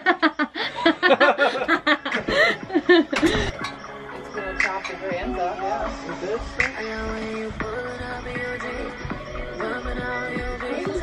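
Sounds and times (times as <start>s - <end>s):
girl laughing: 0.0s - 3.7s.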